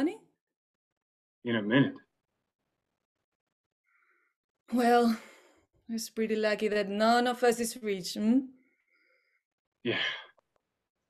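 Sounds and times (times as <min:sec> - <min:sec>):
person sighing yeah: 0:09.9 - 0:10.2.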